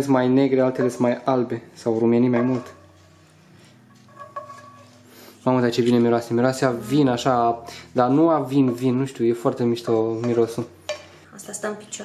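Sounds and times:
spatula moving food in pan: 0:00.0 - 0:09.0, 0:09.7 - 0:11.2.

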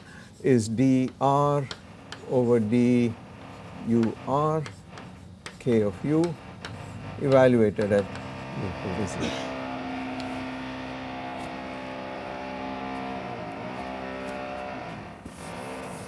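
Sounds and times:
engine drone: 0:01.8 - 0:16.0.

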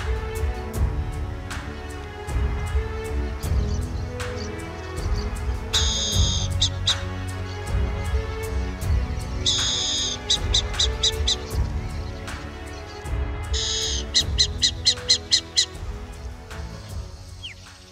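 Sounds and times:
background music: 0:00.0 - 0:17.9
bird call: 0:03.4 - 0:07.8, 0:09.4 - 0:15.8.

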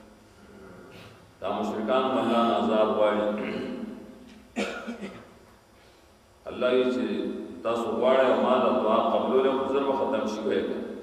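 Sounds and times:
man coughing: 0:03.3 - 0:03.9, 0:04.6 - 0:05.3.

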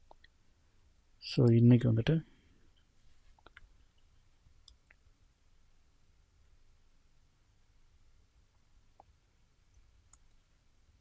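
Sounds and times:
faint keyboard and mouse clicks: 0:00.0 - 0:00.4, 0:03.3 - 0:05.1, 0:08.5 - 0:10.5.

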